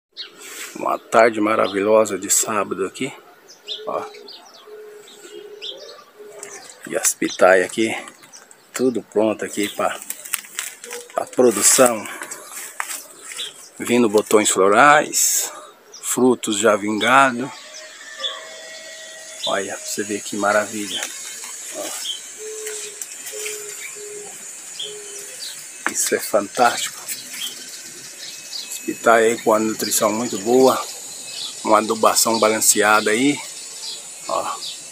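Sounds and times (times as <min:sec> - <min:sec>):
birds chirping high: 0:00.1 - 0:34.9
bird low steady call: 0:17.0 - 0:34.9.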